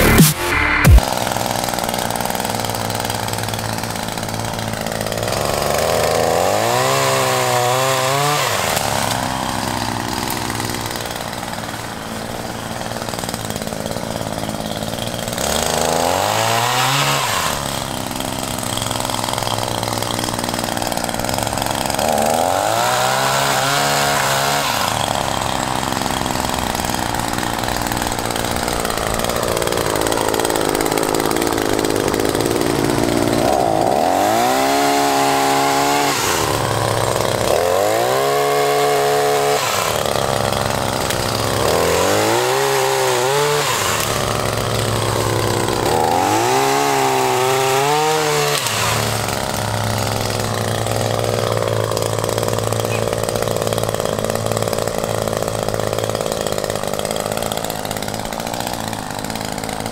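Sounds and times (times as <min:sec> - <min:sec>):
pole saw engine revving: 0:00.0 - 0:59.9.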